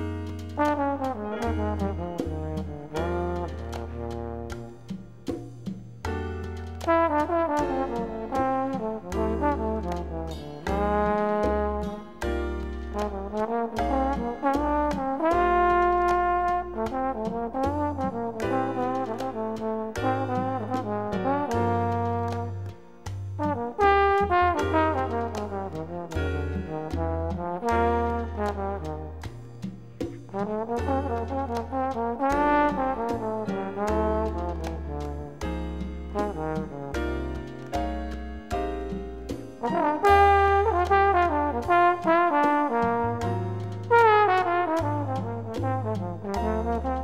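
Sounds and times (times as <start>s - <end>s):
percussion hits: 0.0s - 22.0s, 23.0s - 47.0s
bass line: 0.0s - 47.0s
brass horns melody: 0.6s - 4.9s, 6.8s - 12.1s, 12.9s - 22.8s, 23.4s - 29.3s, 30.3s - 37.5s, 39.6s - 47.0s.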